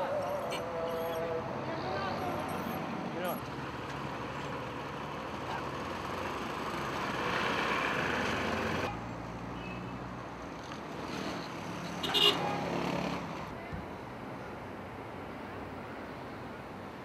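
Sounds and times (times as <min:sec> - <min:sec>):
street traffic passing: 0:00.0 - 0:17.0.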